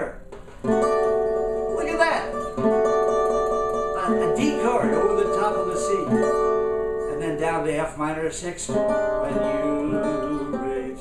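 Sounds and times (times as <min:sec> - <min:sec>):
banjo playing chords: 0:00.0 - 0:07.9
man singing: 0:04.0 - 0:06.2, 0:07.0 - 0:11.0.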